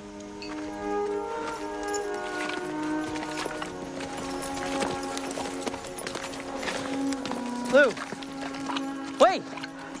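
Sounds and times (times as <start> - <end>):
film score of long held notes: 0.0 - 10.0
horse hooves clopping on dirt: 0.0 - 10.0.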